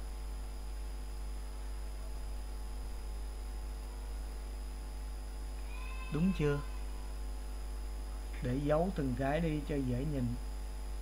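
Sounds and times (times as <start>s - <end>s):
electrical mains hum: 0.0s - 11.0s
faint high whine: 0.0s - 11.0s.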